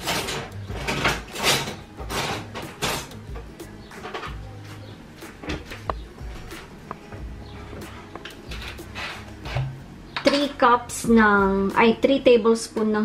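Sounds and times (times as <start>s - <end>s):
kitchen items knocking and clattering: 0.0s - 4.4s, 8.2s - 10.6s
background music: 0.0s - 13.0s.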